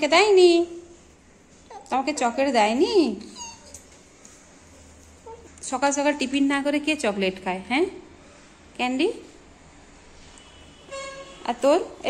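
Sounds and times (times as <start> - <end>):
woman's voice: 0.0 - 0.9, 1.7 - 3.4, 5.6 - 8.1, 8.8 - 9.4, 11.4 - 12.0
puppy whimpering: 3.2 - 3.9.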